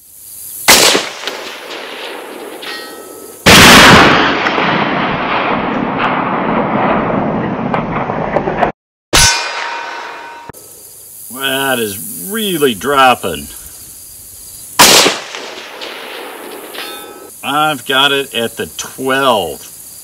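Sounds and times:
sharp hit with ringing tone: 2.6s - 4.0s, 9.1s - 10.7s, 16.5s - 17.3s
sharp metal clang: 2.6s - 4.0s, 9.1s - 10.6s, 16.4s - 17.3s.

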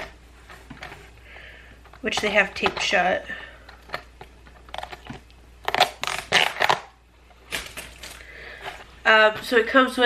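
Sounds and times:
tape being peeled and torn: 4.6s - 8.3s.

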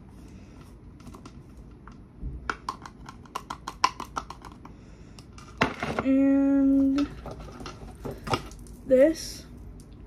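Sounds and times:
plastic makeup containers clicking: 2.5s - 4.6s.

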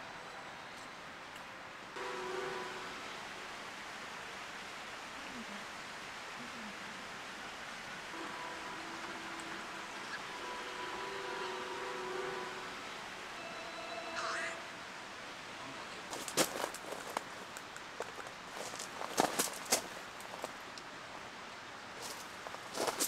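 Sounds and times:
even hiss: 1.9s - 23.0s.

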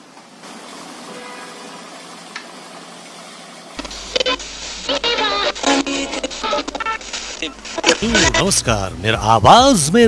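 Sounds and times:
steady hiss: 3.8s - 8.4s
radio playing music loudly: 3.8s - 10.0s.

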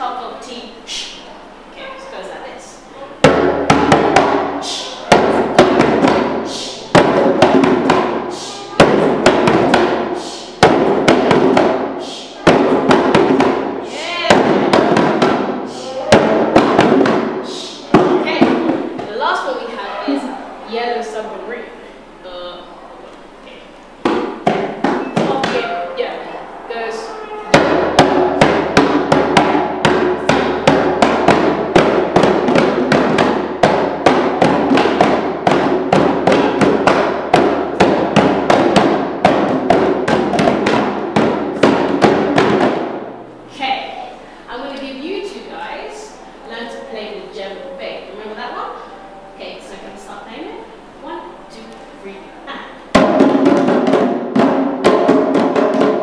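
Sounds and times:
hand drums played: 3.2s - 19.0s, 24.0s - 26.4s, 27.1s - 43.3s, 52.5s - 56.0s.

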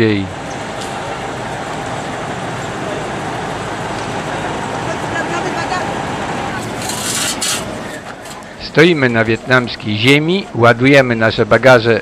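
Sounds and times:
traffic noise: 0.0s - 12.0s
trucks and buses passing: 0.0s - 12.0s.

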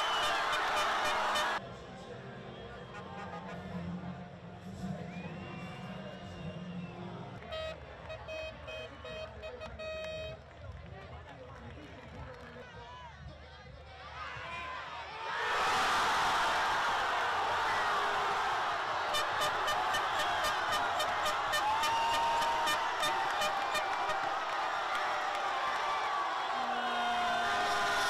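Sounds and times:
crowd cheering and shouting: 0.0s - 1.6s, 14.0s - 28.0s
crowd chatter: 0.0s - 15.3s, 16.9s - 28.0s.

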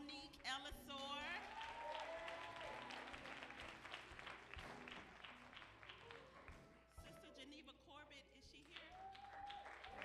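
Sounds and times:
congregation applauding: 1.2s - 7.0s, 8.6s - 10.0s.

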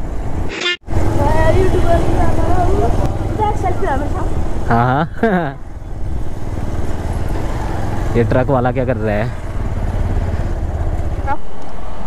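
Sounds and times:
motorcycle engine and wind rumble: 0.0s - 12.0s.

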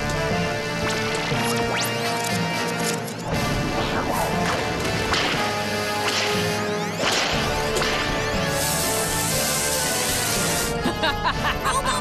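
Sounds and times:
dramatic action music: 0.0s - 12.0s.

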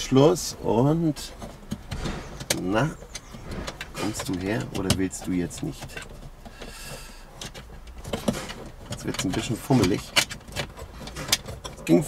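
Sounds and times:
plastic clicks and rubbing: 1.3s - 12.0s.

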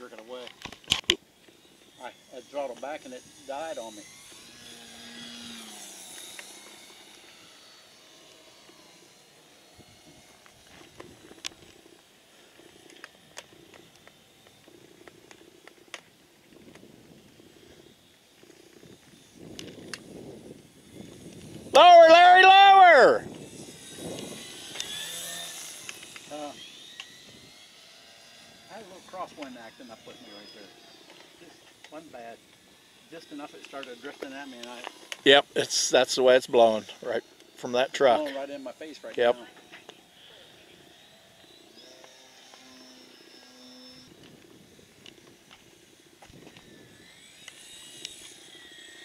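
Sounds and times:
model airplane motor droning: 0.0s - 49.0s
person shouting whoo: 21.7s - 23.2s.

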